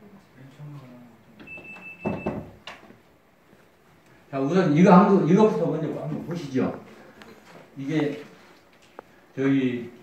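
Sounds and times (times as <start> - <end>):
high-pitched beep: 1.5 - 2.4.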